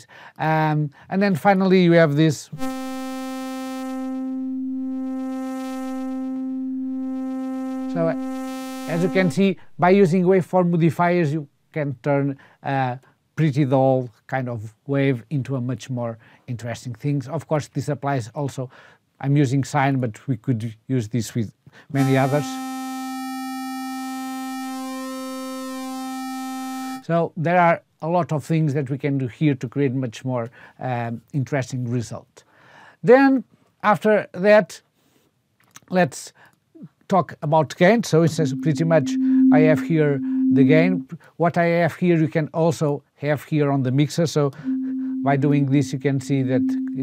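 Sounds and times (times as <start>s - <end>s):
buzzy synthesizer note: 2.5s - 10.2s, 22.0s - 27.0s, 38.2s - 41.2s, 44.6s - 47.0s.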